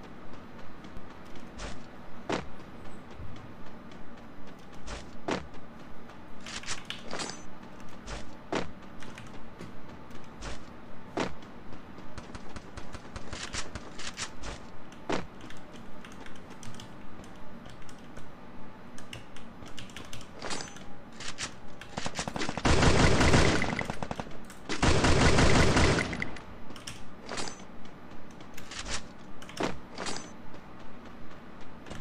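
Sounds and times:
automatic gunfire: 22.3s - 26.4s.

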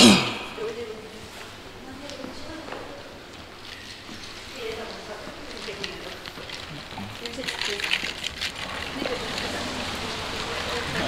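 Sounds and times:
indistinct voices: 0.0s - 1.1s
rain on wet pavement: 5.6s - 11.0s.

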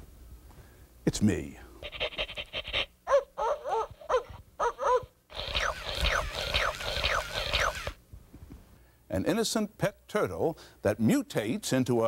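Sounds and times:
toy dog yips: 1.8s - 8.0s
toy buzzy rattle: 5.3s - 8.0s.

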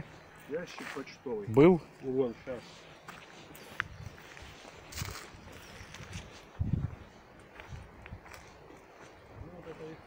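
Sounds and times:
footsteps on dry leaves: 0.0s - 10.0s.

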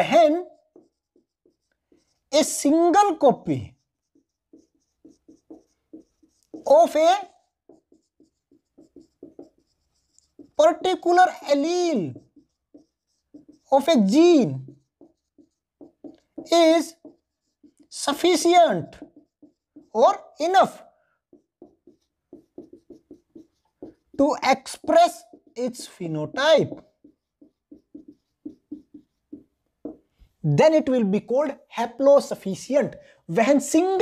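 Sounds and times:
marker writing on a whiteboard: 0.0s - 34.0s.

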